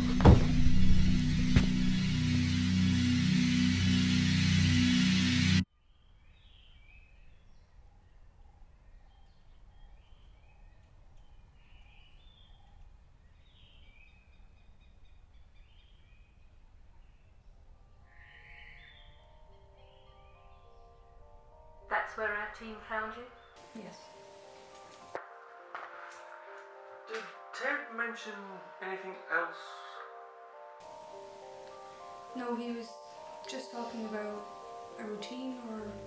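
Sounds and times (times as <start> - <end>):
soft sustained musical notes: 0.0 - 5.7, 17.8 - 36.0
birdsong: 0.0 - 25.1
faint outdoor ambience: 0.0 - 36.0.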